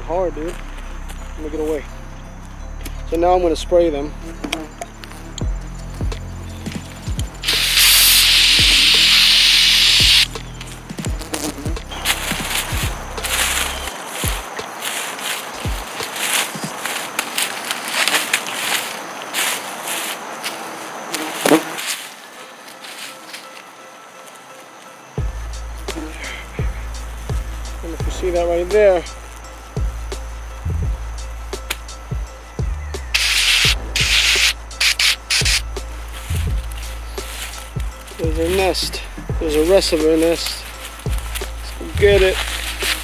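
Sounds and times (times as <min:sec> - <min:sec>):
music: 0:00.0 - 0:19.3, 0:20.3 - 0:43.0
aerosol spray hissing: 0:07.4 - 0:10.3, 0:33.1 - 0:37.7.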